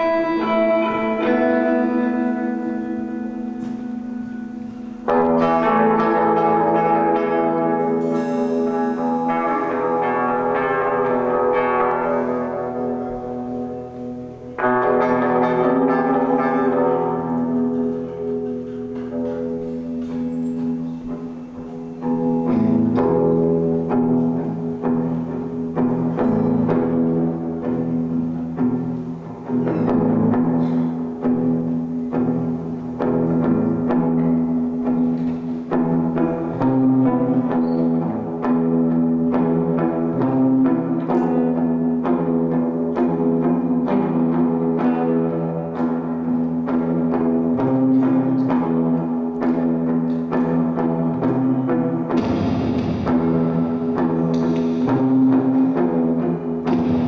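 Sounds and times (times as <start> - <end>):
electric guitar: 0.0 - 57.0
drum hits: 52.1 - 55.8, 56.6 - 57.0.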